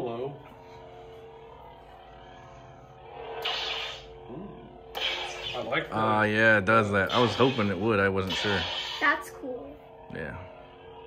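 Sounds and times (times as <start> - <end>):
lightsaber humming: 0.0 - 11.0
lightsaber swing whoosh: 3.2 - 4.1.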